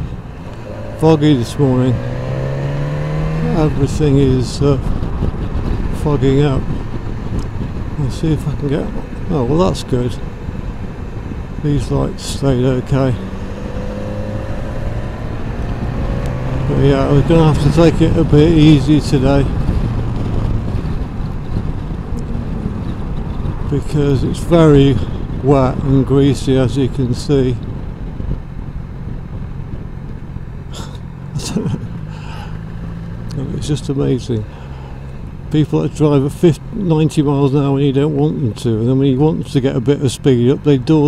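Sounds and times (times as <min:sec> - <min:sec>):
motorcycle engine running: 0:00.0 - 0:39.0
low rumble: 0:00.0 - 0:39.4
motorcycle engine pulling away: 0:00.6 - 0:04.3, 0:13.2 - 0:18.6, 0:30.0 - 0:35.2.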